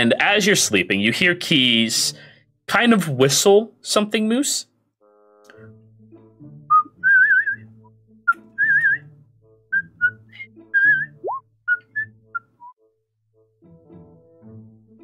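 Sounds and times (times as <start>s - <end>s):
quiet background music: 0.0s - 15.0s
person whistling a tune: 6.7s - 12.8s.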